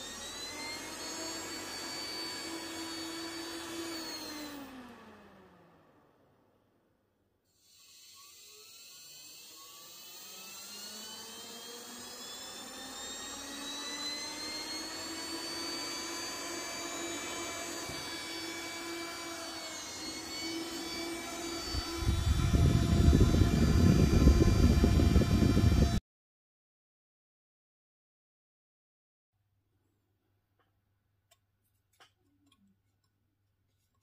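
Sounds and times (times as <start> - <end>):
motor whine rising in pitch: 0.0 - 6.2, 7.7 - 26.0
rush of air from fan blades: 21.7 - 26.0.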